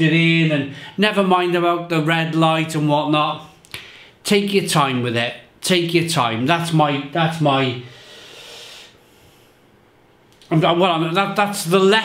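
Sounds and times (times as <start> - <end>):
man breathing in: 3.8 - 4.2, 7.8 - 9.8.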